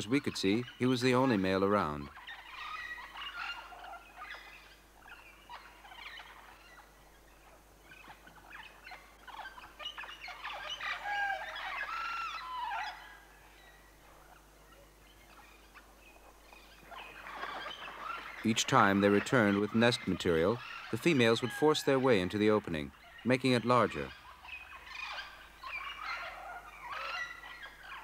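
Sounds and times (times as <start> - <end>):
birds chattering and whistling: 0.0 - 28.0
gurgling gliding bird calls: 0.0 - 28.0.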